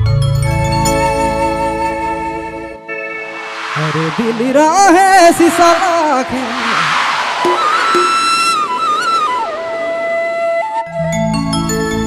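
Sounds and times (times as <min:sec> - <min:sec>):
solo flute melody: 0:00.6 - 0:03.4, 0:07.5 - 0:12.0.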